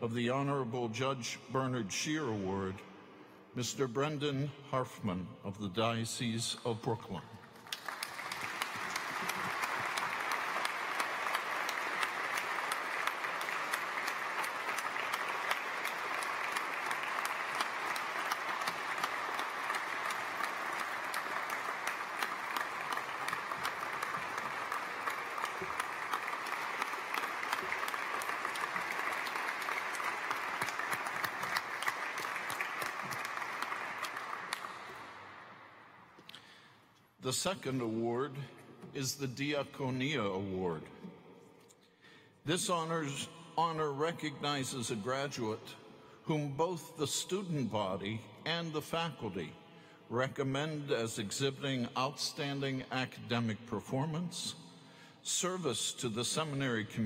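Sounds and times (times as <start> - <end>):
audience applauding: 7.6 - 35.5.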